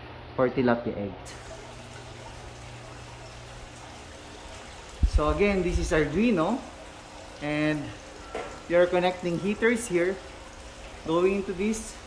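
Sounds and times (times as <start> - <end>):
steady low hum: 1.1 - 12.0
water running from pipes: 1.2 - 12.0.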